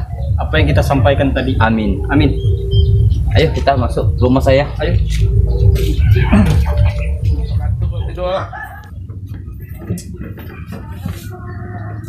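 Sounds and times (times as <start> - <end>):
loud low rumble: 0.0 - 10.4
chickens clucking: 0.0 - 12.0
low voices: 0.0 - 12.0.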